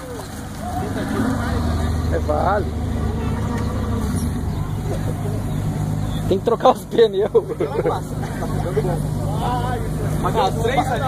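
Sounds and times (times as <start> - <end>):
faint voices: 0.0 - 11.0
vehicle engine running: 0.0 - 11.0.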